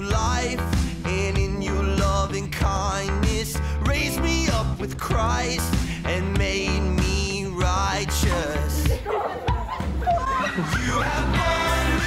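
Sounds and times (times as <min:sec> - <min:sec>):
music: 0:00.0 - 0:12.0
teenagers' excited voices: 0:08.4 - 0:12.0.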